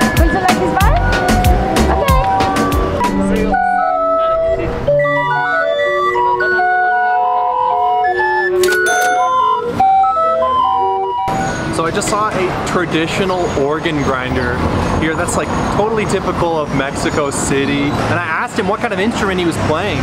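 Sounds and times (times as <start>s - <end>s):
loud street noise: 0.0s - 20.0s
barrel organ playing a tune: 1.9s - 12.1s.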